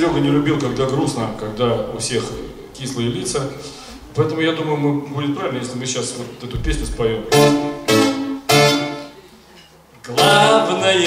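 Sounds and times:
acoustic guitar strummed: 7.3 - 9.0.

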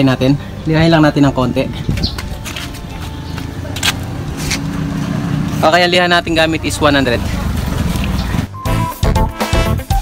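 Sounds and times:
vehicle engine rumble: 1.6 - 8.6.

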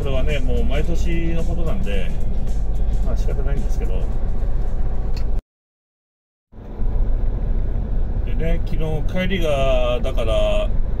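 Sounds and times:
truck engine and road rumble: 0.0 - 5.4, 6.5 - 11.0.

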